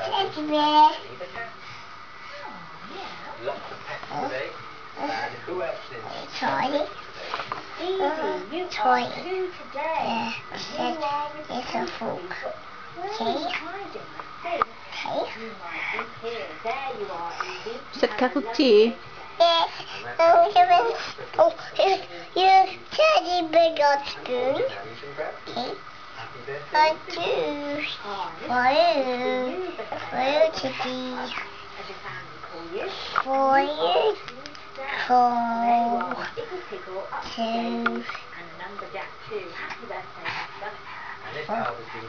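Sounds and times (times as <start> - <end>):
child talking: 0.0 - 1.0, 7.8 - 12.0, 13.0 - 13.8, 19.4 - 24.6, 26.8 - 31.4, 33.3 - 34.3, 34.9 - 36.2.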